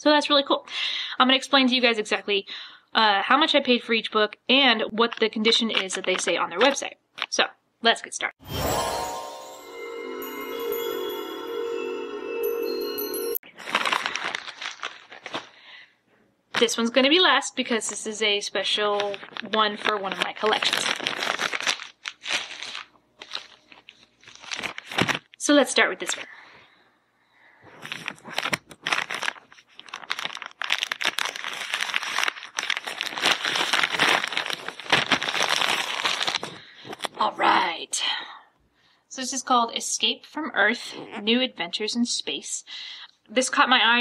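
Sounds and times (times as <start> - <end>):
chiming intro music: 8.4 - 13.4
plastic mailer crinkling: 13.6 - 15.6, 19.0 - 25.3, 27.8 - 37.1
scissors cutting wrapping: 27.9 - 36.5.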